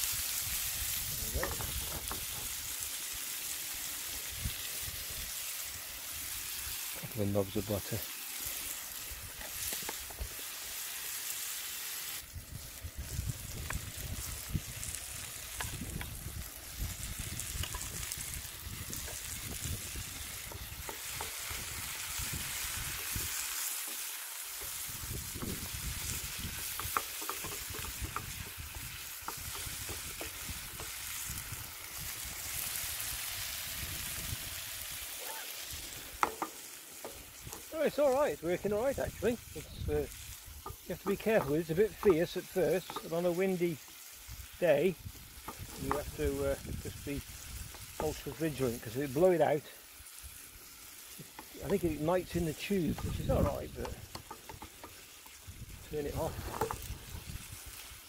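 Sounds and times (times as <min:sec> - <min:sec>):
food sizzling in frying pan: 0:00.0 - 0:58.0.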